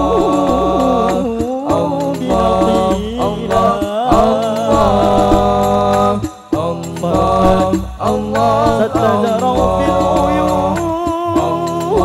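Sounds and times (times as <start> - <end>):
man singing ornamented phrases: 0.0 - 12.0.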